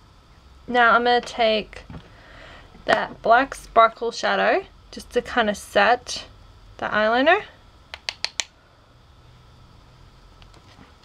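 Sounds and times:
faint room hum: 0.0s - 11.0s
sharp plastic clicks: 7.9s - 8.5s.

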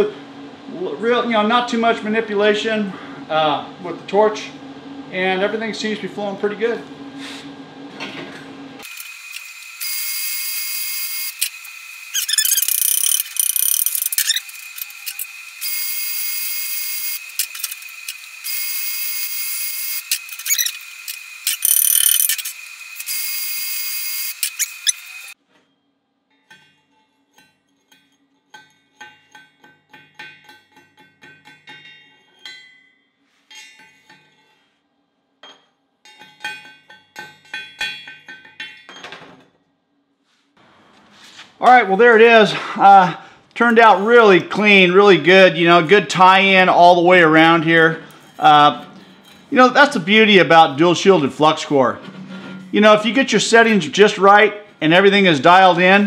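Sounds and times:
welding arc crackling and hissing: 8.8s - 25.4s.

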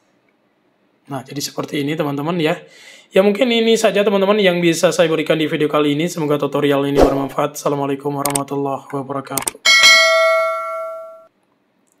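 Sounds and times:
bell-like ding: 9.7s - 11.3s.

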